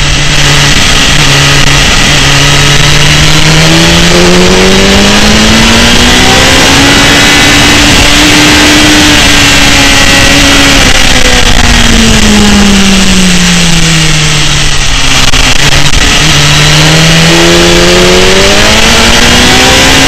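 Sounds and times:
heavy wind noise: 0.0s - 20.0s
motorcycle engine: 0.0s - 20.0s.

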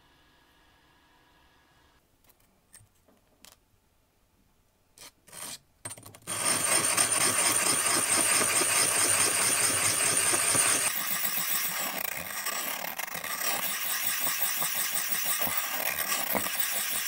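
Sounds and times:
gritty scraping of glass: 10.1s - 17.0s.

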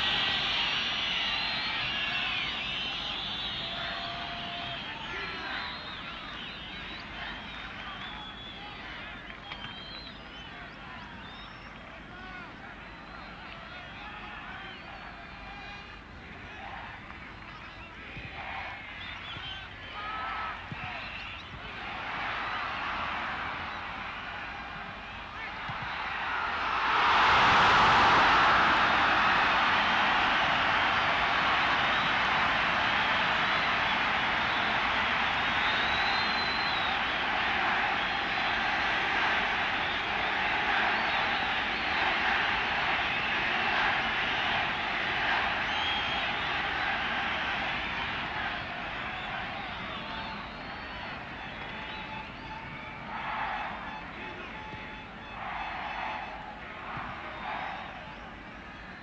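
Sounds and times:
stadium crowd roaring: 0.0s - 59.0s.

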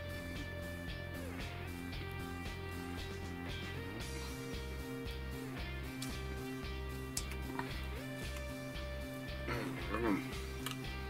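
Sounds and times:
music with pulsing beat: 0.0s - 11.0s
man's voice: 9.4s - 10.4s.

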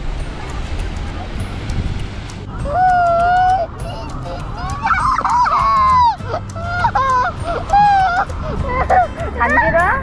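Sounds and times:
child squealing: 2.6s - 9.1s.

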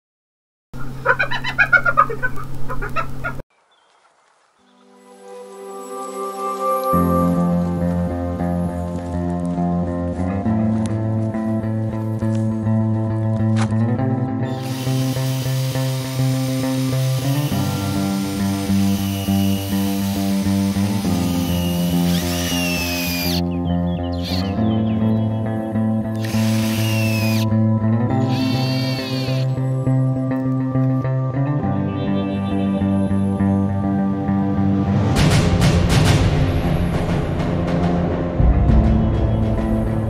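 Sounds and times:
hyena cackling: 0.8s - 3.4s
background music: 4.6s - 40.0s
cordless drill boring into wood: 14.5s - 23.4s, 24.2s - 24.5s, 26.2s - 27.5s, 28.2s - 29.6s.

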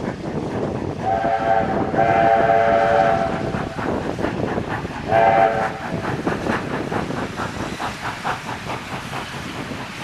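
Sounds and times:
locomotive steam whistle: 1.0s - 3.5s, 5.1s - 5.9s.

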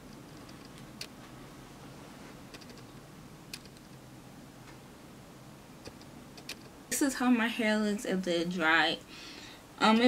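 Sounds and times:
steady low hiss: 0.0s - 10.0s
sharp clicks: 3.5s - 4.0s, 5.8s - 6.7s.

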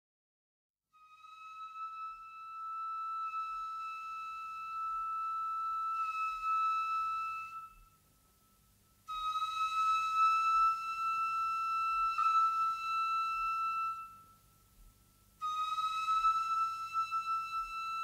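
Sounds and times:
flute holding long high notes: 1.0s - 18.0s.

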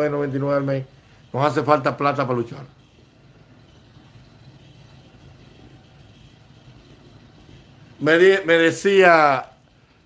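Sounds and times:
faint background hum and hiss: 0.0s - 10.0s.

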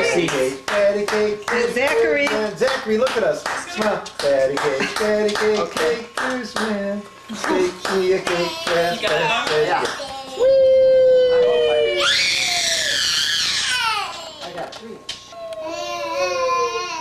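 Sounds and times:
child's high shriek: 11.9s - 14.1s.

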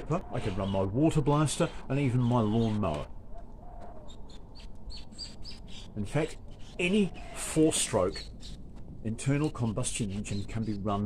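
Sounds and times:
small bird chirping: 3.8s - 8.6s.

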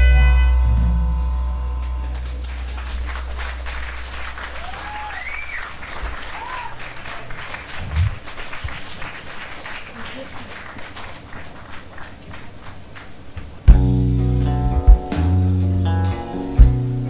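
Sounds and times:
band chord ringing: 0.0s - 2.4s
amp hum: 0.0s - 6.4s, 7.6s - 8.8s, 13.4s - 17.0s
audience applauding: 1.8s - 13.4s
whistles: 4.8s - 5.7s.

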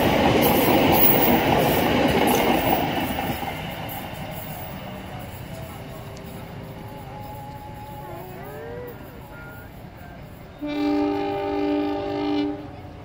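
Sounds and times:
train rumbling on track: 0.0s - 13.0s
train horn blast: 10.5s - 13.0s.

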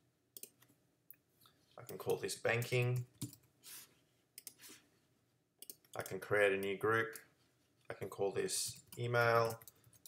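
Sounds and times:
person speaking: 1.8s - 3.9s, 5.8s - 9.8s.

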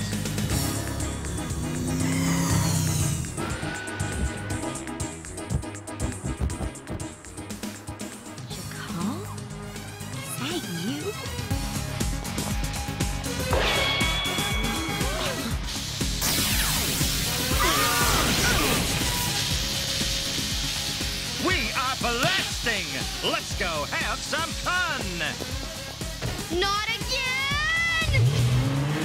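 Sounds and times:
background music: 0.0s - 29.0s
cartoon electrical zapping: 14.8s - 21.2s.

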